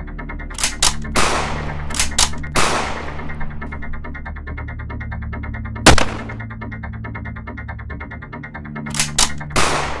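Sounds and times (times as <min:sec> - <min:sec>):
gunshots with echoing tail: 0:02.5 - 0:03.3, 0:05.9 - 0:06.4
quick sharp gunshots: 0:05.9 - 0:06.4.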